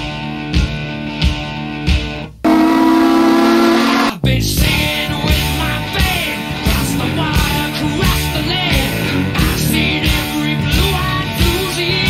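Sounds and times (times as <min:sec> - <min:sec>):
rock music: 0:00.0 - 0:12.0
steam locomotive chime whistle: 0:02.5 - 0:04.2.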